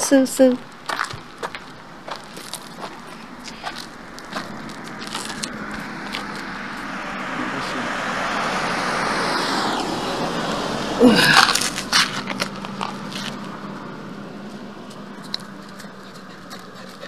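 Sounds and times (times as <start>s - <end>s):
footsteps on gravel: 0.6s - 6.9s, 11.1s - 17.0s
car passing by: 2.8s - 17.0s.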